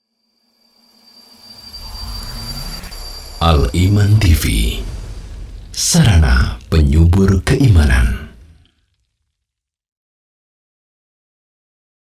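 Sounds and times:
faint high whine: 0:00.0 - 0:08.7
rumble and whoosh effect: 0:01.4 - 0:09.2.

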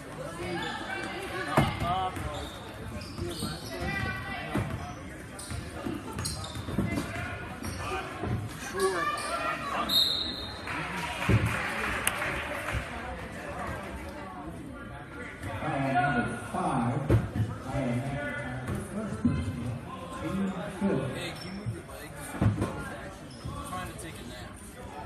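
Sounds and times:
voices of spectators: 0:00.0 - 0:25.0.

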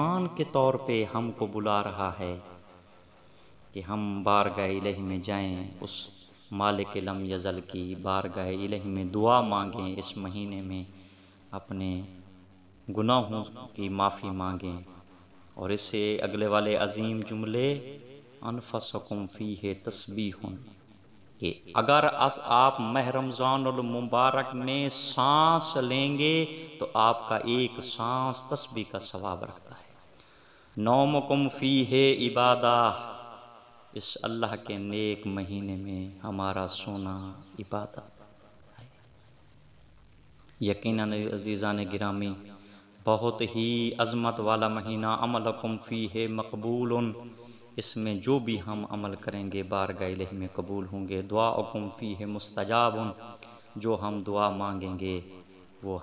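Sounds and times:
man chanting: 0:00.0 - 0:02.7, 0:03.7 - 0:10.9, 0:11.5 - 0:12.2, 0:12.8 - 0:30.0, 0:30.8 - 0:39.0, 0:40.6 - 0:56.0
man delivering a sermon: 0:00.0 - 0:39.2, 0:40.2 - 0:56.0.

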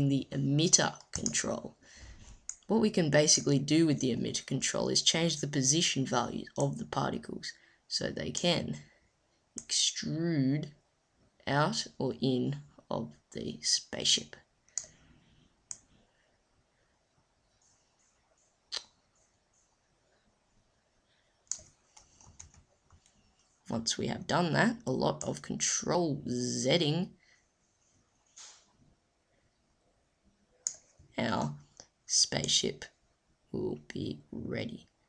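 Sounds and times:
computer mouse clicks: 0:14.7 - 0:15.0, 0:15.7 - 0:15.9, 0:21.4 - 0:23.2, 0:30.6 - 0:32.6
computer mouse click: 0:15.7 - 0:15.9, 0:21.5 - 0:23.2, 0:30.6 - 0:30.9.

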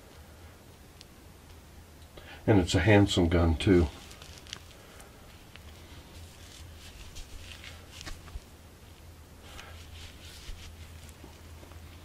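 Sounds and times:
steady low hum: 0:00.0 - 0:12.0
handling rustles and light bumps: 0:03.6 - 0:12.0.

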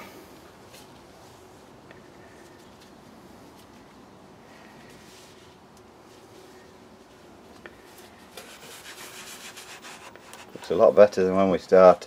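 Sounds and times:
faint rubbing and scraping: 0:07.8 - 0:12.0.

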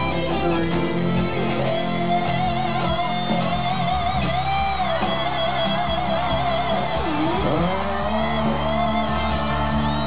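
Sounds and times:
bass and drums: 0:00.0 - 0:10.0
electric guitar pitch bend: 0:00.0 - 0:10.0.

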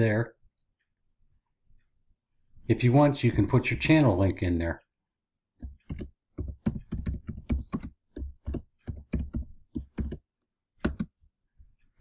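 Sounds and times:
typing on computer keyboard: 0:05.6 - 0:10.2, 0:10.8 - 0:11.1.

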